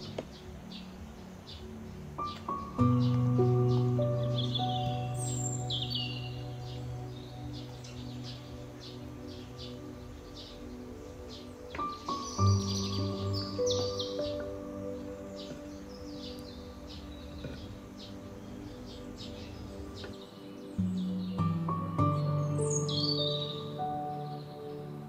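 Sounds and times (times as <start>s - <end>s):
birds chirping and singing: 0.0s - 25.0s
calm instrumental music: 0.0s - 25.0s.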